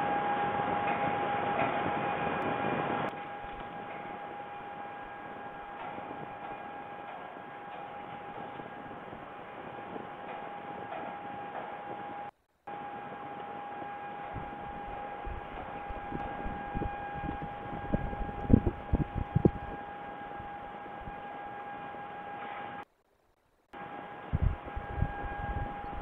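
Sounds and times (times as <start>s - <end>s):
microphone hiss and whine: 0.0s - 26.0s.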